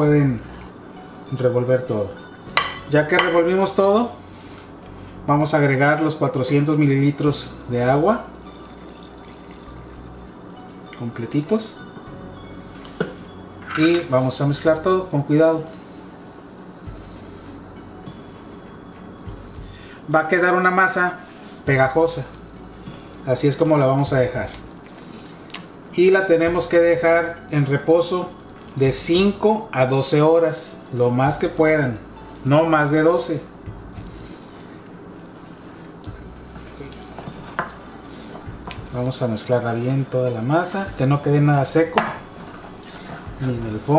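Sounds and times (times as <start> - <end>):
quiet background music: 0.0 - 43.9
fork clinking glass bowl: 2.5 - 3.5, 13.0 - 14.1.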